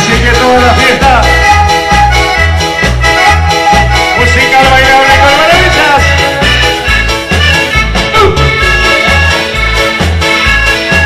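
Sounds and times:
accordions playing melody: 0:00.0 - 0:11.0
drum kit: 0:00.0 - 0:11.0
electronic keyboard: 0:00.0 - 0:11.0
steady bass beat: 0:00.0 - 0:11.0.

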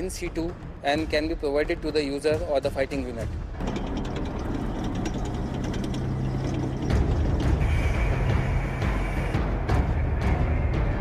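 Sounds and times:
tracks clattering: 0:00.1 - 0:07.8
armoured vehicle engine rumble: 0:03.2 - 0:11.0.

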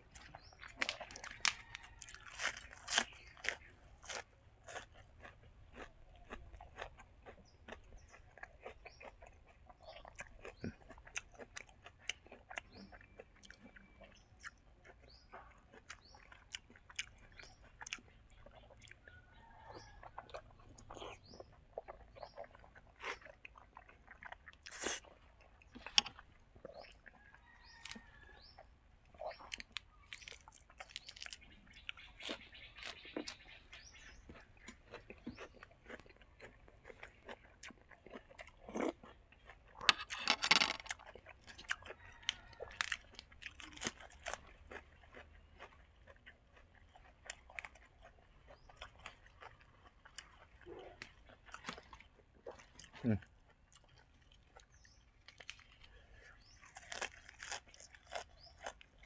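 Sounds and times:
man chewing with wet smacks: 0:00.0 - 0:40.2, 0:40.8 - 0:59.0
clicks and crunching: 0:34.3 - 0:45.8, 0:56.6 - 0:59.0.

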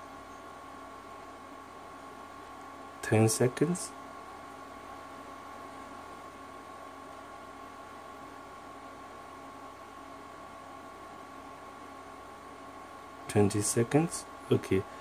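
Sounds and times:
laptop fan hiss and hum: 0:00.0 - 0:15.0
thin constant whine: 0:00.0 - 0:15.0.

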